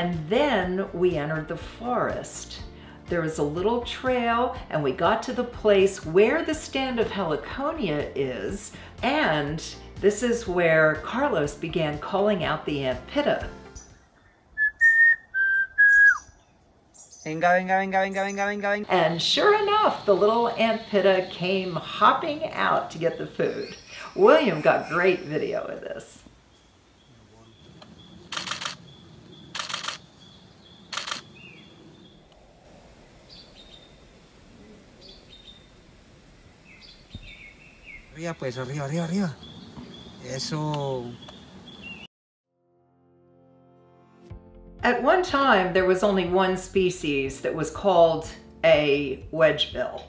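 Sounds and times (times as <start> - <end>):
faint bird chirps: 13.8 - 17.4, 33.2 - 35.7
man whistling notes: 14.6 - 16.3
camera shutter firing in bursts: 28.3 - 28.8, 29.5 - 30.1, 30.9 - 31.3.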